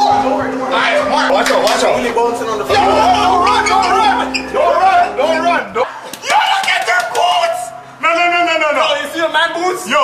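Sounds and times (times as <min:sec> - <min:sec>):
men calling out: 0:00.0 - 0:09.0.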